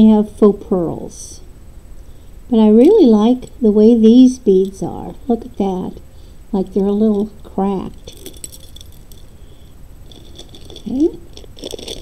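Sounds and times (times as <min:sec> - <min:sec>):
glass beads clinking: 0:07.1 - 0:09.4, 0:10.0 - 0:12.0.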